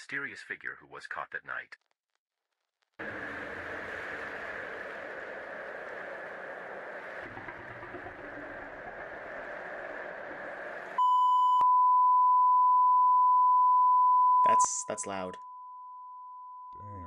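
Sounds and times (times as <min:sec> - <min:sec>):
noisy hiss: 0:03.0 - 0:11.0.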